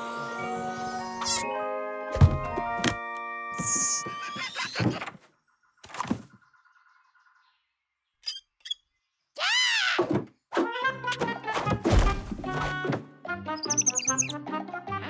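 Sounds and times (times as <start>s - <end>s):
cartoon music: 10.6s - 14.5s.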